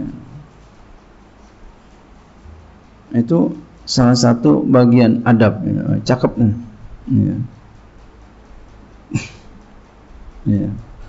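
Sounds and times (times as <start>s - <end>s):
man coughing: 9.1s - 9.5s.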